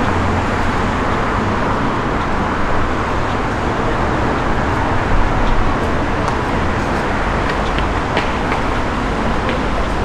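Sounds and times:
road traffic rumble and hiss: 0.0 - 10.0.

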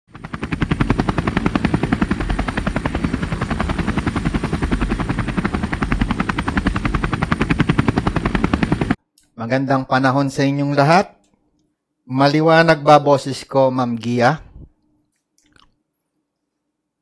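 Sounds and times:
rapid chopping pulse: 0.1 - 9.0.

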